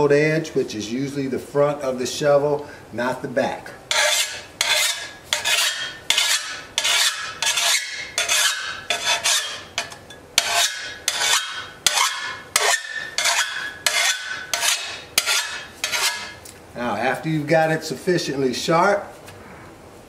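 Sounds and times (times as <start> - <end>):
hand file rasping on steel: 3.9 - 16.4.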